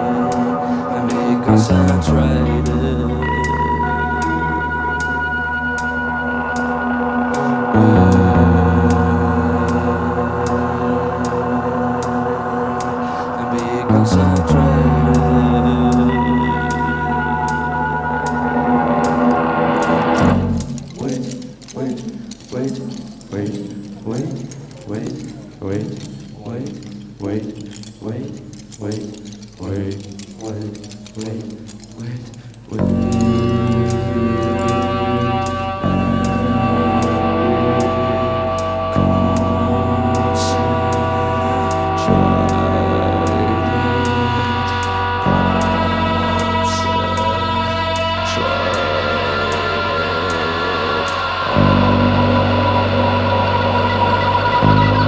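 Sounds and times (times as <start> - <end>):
live band low drone: 0.0 - 22.5, 32.6 - 55.0
gliding tones: 0.0 - 55.0.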